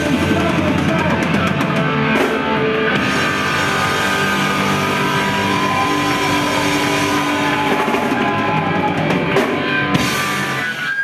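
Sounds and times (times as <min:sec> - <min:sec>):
distorted electric guitars: 0:00.0 - 0:11.0.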